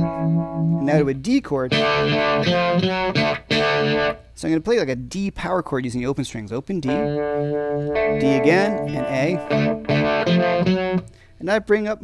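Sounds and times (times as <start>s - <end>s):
electric guitar strumming chords: 0.0s - 4.2s, 6.9s - 11.3s.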